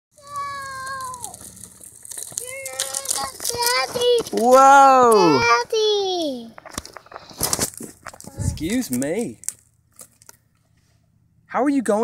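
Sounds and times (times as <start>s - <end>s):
child calling out: 0.2s - 1.4s, 2.4s - 6.4s
balance bike clicking and rattling: 0.2s - 5.5s.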